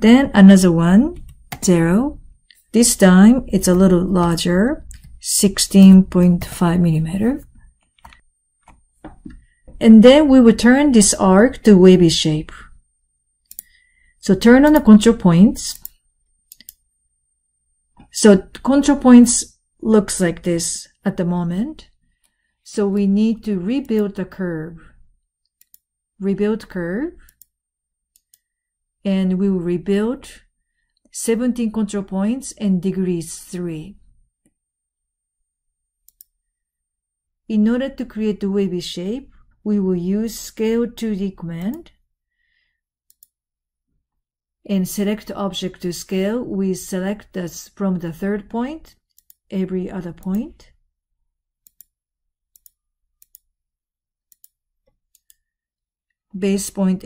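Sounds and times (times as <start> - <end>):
faint computer mouse clicks: 7.8 - 9.5, 13.5 - 13.8, 15.7 - 16.8, 36.1 - 36.3, 55.2 - 55.5.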